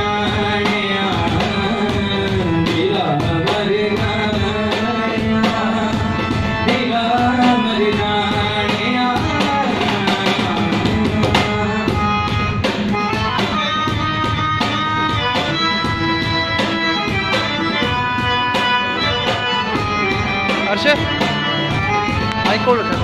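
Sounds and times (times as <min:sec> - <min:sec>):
cajon beat: 0:00.0 - 0:23.0
harmonium chords: 0:00.0 - 0:23.0.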